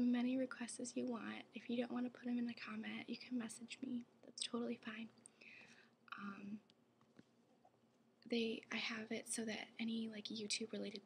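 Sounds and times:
woman whispering: 2.4s - 5.2s.

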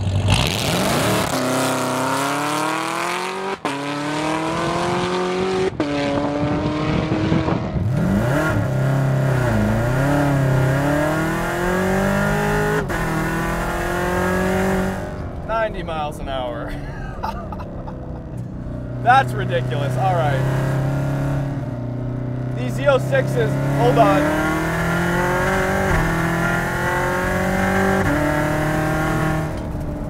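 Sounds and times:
car engine at full throttle: 0.0s - 30.0s.

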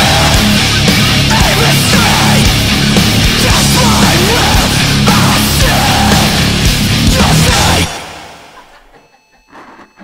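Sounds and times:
punk band song: 0.0s - 8.8s.

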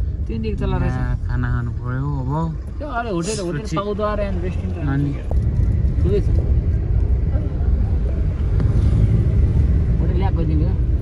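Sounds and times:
car driving rumble from inside: 0.0s - 11.0s.

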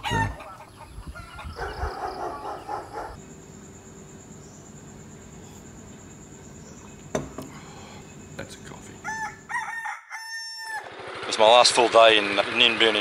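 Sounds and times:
rooster crowing: 0.0s - 3.2s, 9.0s - 11.0s
high-pitched insect trill: 3.2s - 9.5s.

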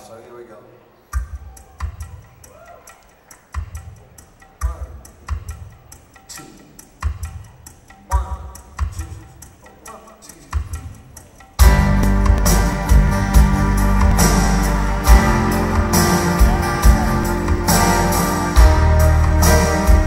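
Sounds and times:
deep low drum hits: 11.6s - 17.7s.

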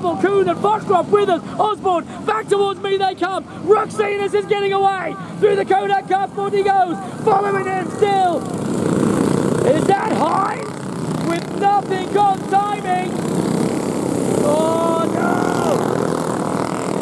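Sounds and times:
commentator speaking: 0.0s - 8.6s, 9.6s - 13.2s, 14.3s - 15.8s
racing kart engines: 0.0s - 17.0s.

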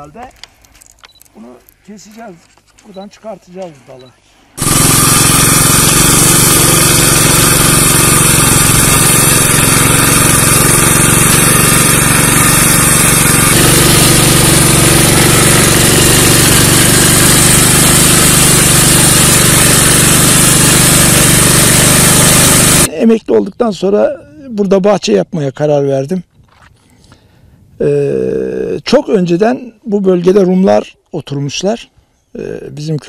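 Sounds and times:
motor hoe engine running: 4.6s - 22.9s.

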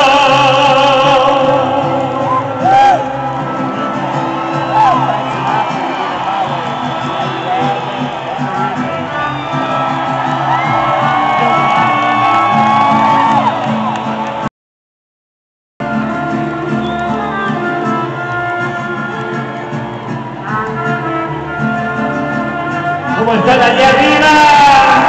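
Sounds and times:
crowd shouting and whooping: 0.0s - 14.5s, 16.2s - 25.0s
mariachi band playing: 0.0s - 14.5s, 15.8s - 25.0s.

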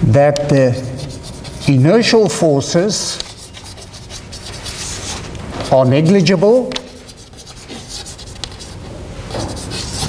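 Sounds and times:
chalk scratching on blackboard: 0.6s - 10.0s.

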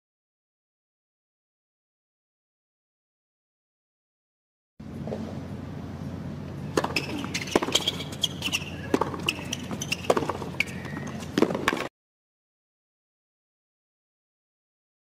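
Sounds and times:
low arena hum: 4.8s - 11.9s
racquet striking tennis ball: 6.6s - 11.9s
tennis ball bouncing: 6.6s - 11.9s
shoe squeaks: 6.7s - 11.9s.

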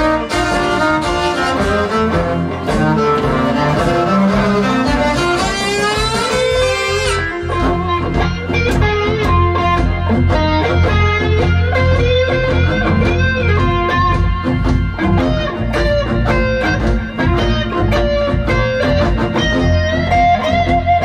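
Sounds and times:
bowed cello phrase: 0.0s - 7.3s
electric guitar blues solo: 0.0s - 21.0s
low bass line: 0.0s - 21.0s.

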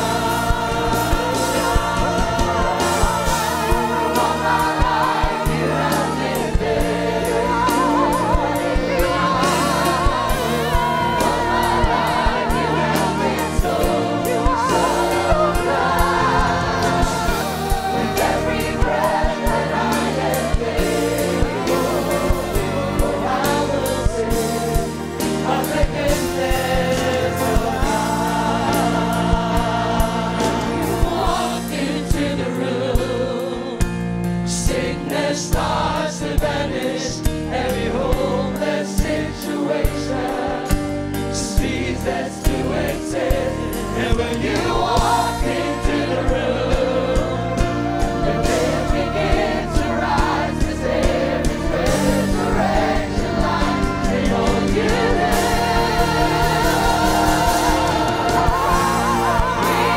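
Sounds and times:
backing singers: 0.0s - 59.9s
band with steady drum beat: 0.0s - 59.9s.

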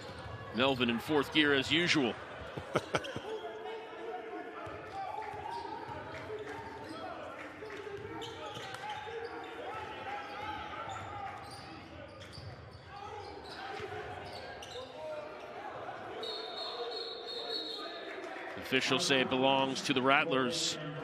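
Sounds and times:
players calling out: 0.7s - 3.4s
referee's whistle: 16.2s - 18.0s.

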